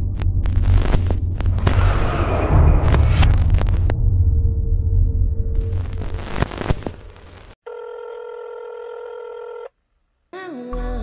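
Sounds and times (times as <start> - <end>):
loud noisy sound: 0.0 - 7.6
telephone ring tone: 7.7 - 9.7.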